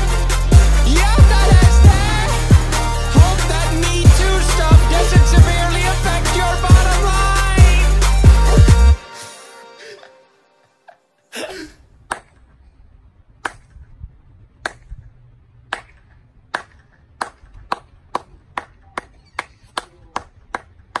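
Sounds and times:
person clapping: 12.1 - 12.4, 15.7 - 21.0.

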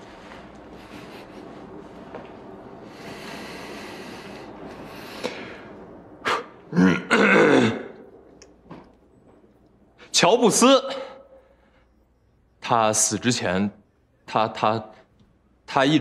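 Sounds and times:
faint room hiss: 0.0 - 16.0
man clearing his throat: 6.7 - 8.0.

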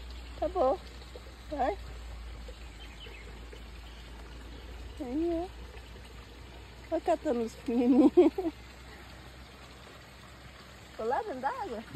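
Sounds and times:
outdoor background noise: 0.0 - 11.9.

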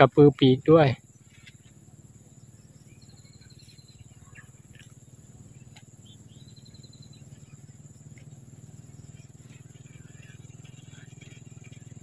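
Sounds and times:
low steady hum: 0.0 - 12.0
small birds trilling: 0.0 - 12.0.

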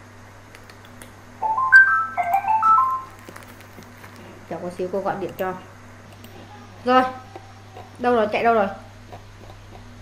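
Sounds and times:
incoming call alert jingle: 1.4 - 3.2.

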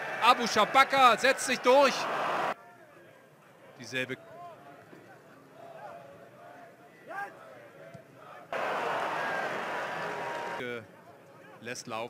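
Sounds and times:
loud crowd noise: 0.0 - 10.6.

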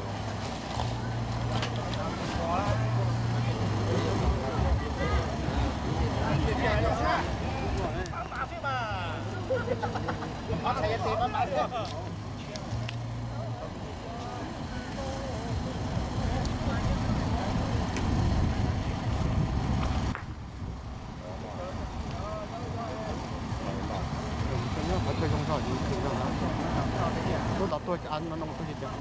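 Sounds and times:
distant voices talking: 0.0 - 29.0
road traffic rumble: 0.0 - 29.0
wind: 0.0 - 29.0.

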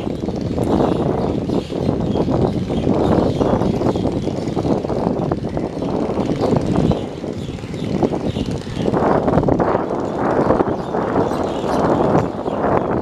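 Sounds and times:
boat engine running: 0.0 - 13.0.

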